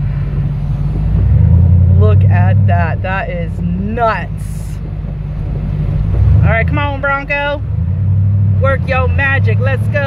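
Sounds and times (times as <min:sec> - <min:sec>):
car engine running inside cabin: 0:00.0 - 0:10.0.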